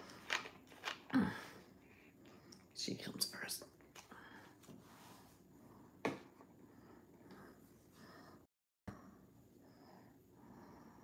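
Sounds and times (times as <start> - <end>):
woman whispering: 2.8 - 3.7.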